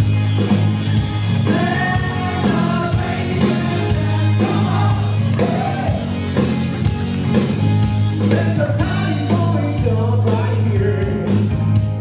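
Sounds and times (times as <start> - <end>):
live band playing: 0.0 - 12.0
steady bass line: 0.0 - 12.0
person singing: 1.5 - 6.0.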